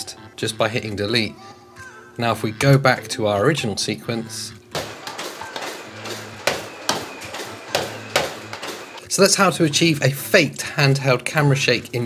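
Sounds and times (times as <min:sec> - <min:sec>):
sharp knocks: 0:04.8 - 0:09.0.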